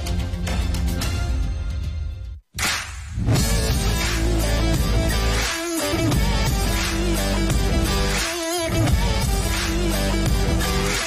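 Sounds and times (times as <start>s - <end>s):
music: 0.0s - 11.0s
television bumper music: 3.2s - 11.0s.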